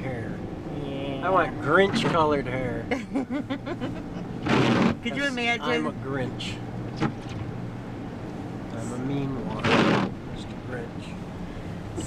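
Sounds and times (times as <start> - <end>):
road and engine noise in car: 0.0 - 12.0.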